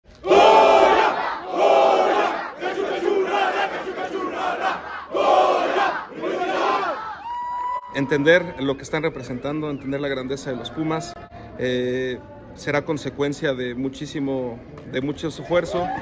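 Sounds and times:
team chanting in unison: 0.2 - 7.2.

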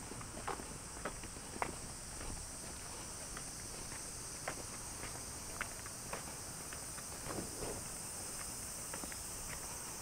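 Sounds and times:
footsteps on asphalt: 0.0 - 10.0
steady high-pitched hiss: 0.0 - 10.0.

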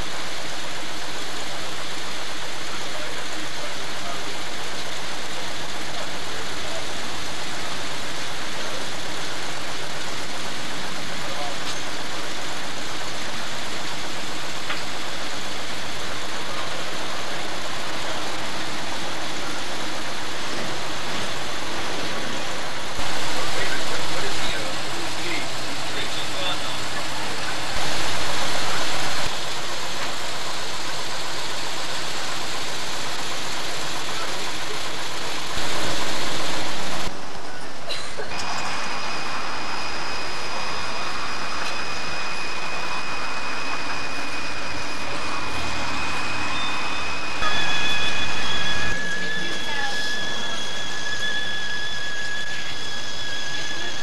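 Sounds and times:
noisy outdoor background: 0.0 - 54.0
indistinct voices: 14.7 - 29.3, 33.6 - 54.0.

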